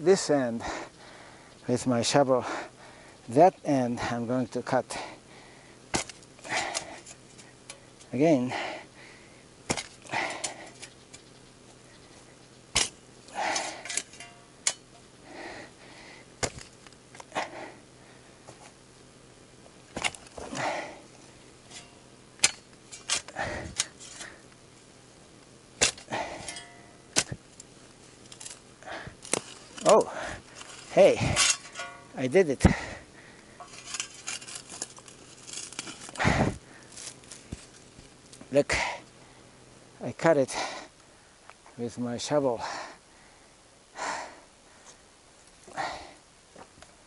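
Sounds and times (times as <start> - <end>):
shovel chopping tree root: 5.9 - 7.2, 9.7 - 10.9, 12.8 - 14.9, 16.4 - 16.7, 19.9 - 20.9, 21.8 - 24.3, 25.8 - 27.4, 29.2 - 32.0.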